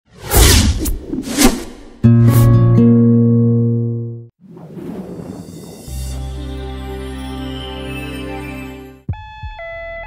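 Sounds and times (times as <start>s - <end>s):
quick whooshes: 0.1s - 2.0s, 4.4s - 6.0s.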